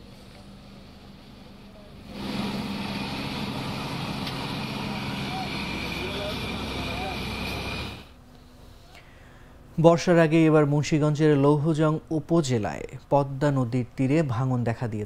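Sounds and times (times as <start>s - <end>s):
boat engine running: 0.9s - 8.2s.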